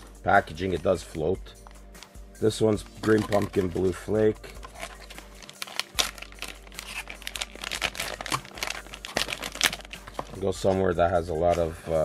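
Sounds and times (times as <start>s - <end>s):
plastic blister pack crinkling: 4.6s - 10.5s.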